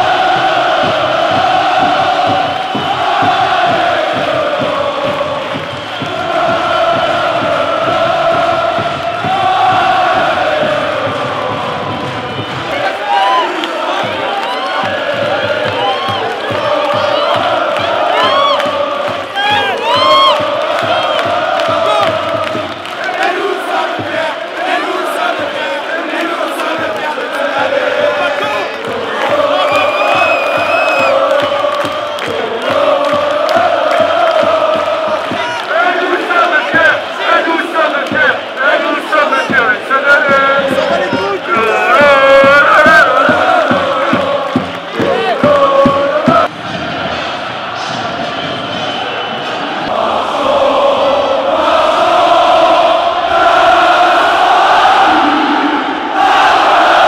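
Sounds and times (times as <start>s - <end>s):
stadium crowd chanting and singing: 0.0s - 57.0s
people shouting: 12.7s - 20.4s, 35.3s - 37.4s, 40.3s - 43.2s.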